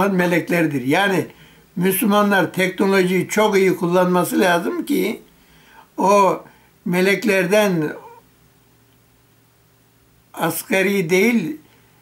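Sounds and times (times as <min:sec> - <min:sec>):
man speaking: 0:00.0 - 0:05.3, 0:06.0 - 0:08.2, 0:10.3 - 0:11.7
steady low hum: 0:00.0 - 0:12.0.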